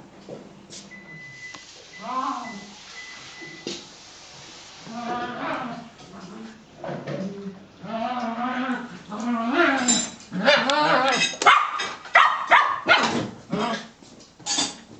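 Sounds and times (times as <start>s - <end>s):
dog barking and yipping: 10.5s - 13.2s.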